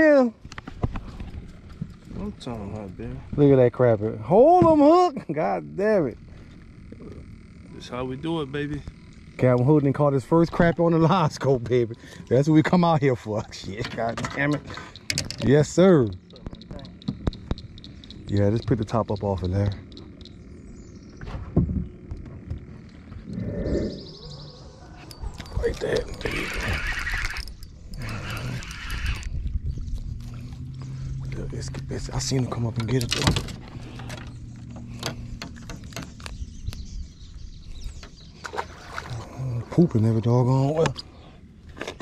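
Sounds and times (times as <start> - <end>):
low steady hum: 0.0 - 42.0
sharp clicks and taps: 14.2 - 20.4.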